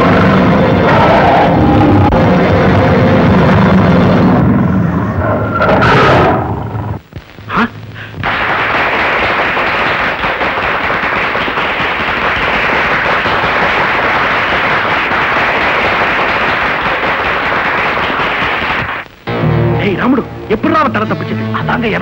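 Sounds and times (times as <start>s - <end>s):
audience applause: 8.2s - 19.0s.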